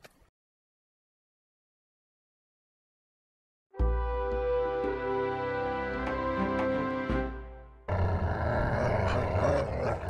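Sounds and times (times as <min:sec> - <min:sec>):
animal growling: 0:07.9 - 0:10.0.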